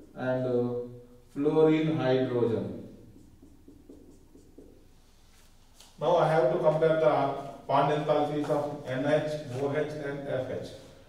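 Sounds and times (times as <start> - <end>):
marker pen writing on whiteboard: 0.0 - 0.3, 2.8 - 7.0, 8.2 - 10.0.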